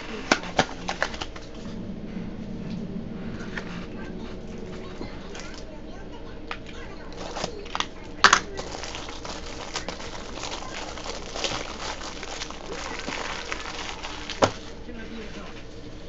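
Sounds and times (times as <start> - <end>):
plastic card sleeves crinkling: 0.0 - 1.6, 7.0 - 15.9.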